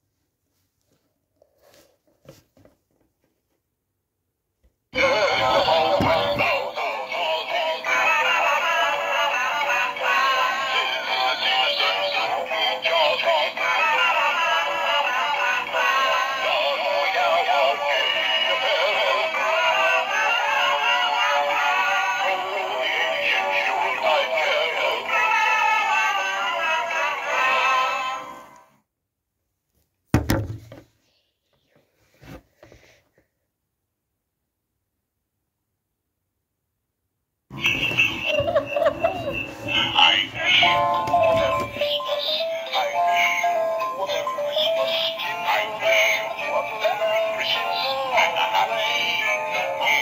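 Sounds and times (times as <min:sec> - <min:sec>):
synthetic singing voice song: 0:05.0 - 0:28.5, 0:37.6 - 0:50.0.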